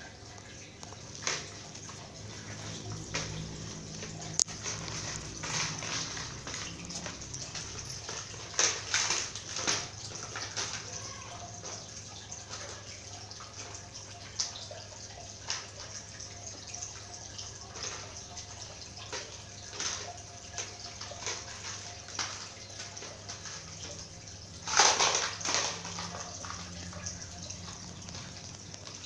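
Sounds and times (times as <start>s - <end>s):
toy clicking and scraping on tiles: 0.8s - 14.6s, 15.3s - 29.0s.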